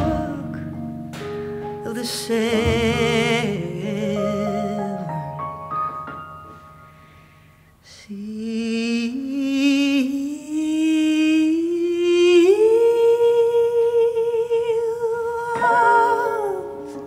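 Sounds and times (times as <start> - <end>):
woman singing wordlessly: 0.0 - 0.8, 1.8 - 5.4, 7.8 - 17.0.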